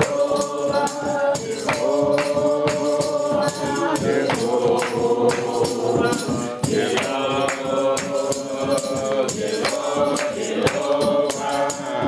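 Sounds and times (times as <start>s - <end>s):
congregation singing: 0.0s - 12.0s
hand percussion beat: 0.0s - 12.0s.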